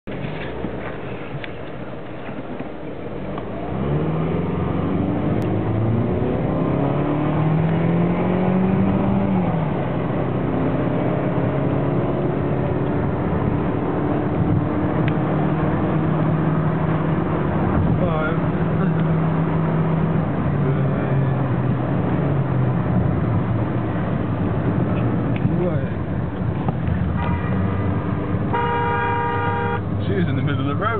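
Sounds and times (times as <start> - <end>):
car engine revving: 3.1 - 30.9
car horn: 27.1 - 29.9.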